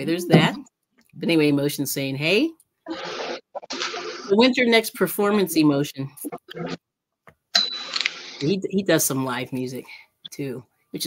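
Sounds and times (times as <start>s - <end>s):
speech fragments: 0.0s - 2.6s
high electronic ding: 7.6s - 8.0s.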